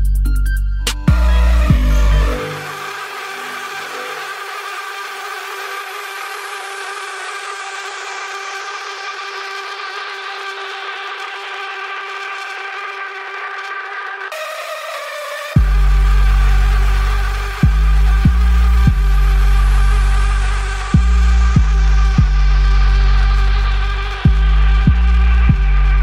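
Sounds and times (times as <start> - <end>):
electronic beat with bass and drums: 0.0 - 26.0
sustained synth chord: 1.0 - 8.0.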